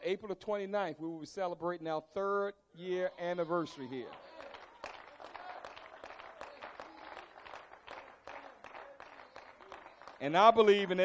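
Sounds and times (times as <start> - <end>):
faint scattered clapping: 3.9 - 11.0.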